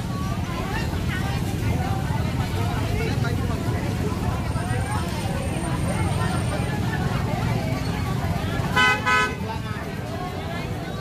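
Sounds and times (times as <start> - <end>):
market chatter: 0.0 - 11.0
vehicle horn blasts: 8.8 - 9.4.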